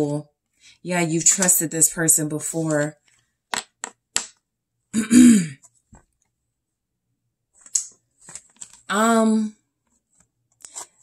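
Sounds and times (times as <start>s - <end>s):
person clearing throat: 4.9s - 5.6s.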